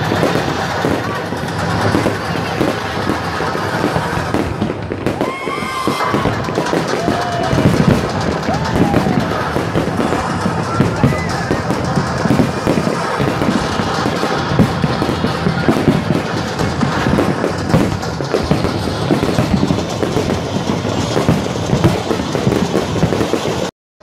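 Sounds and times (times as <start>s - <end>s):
fireworks bursting and crackling: 0.0s - 23.7s
music playing: 0.0s - 23.7s.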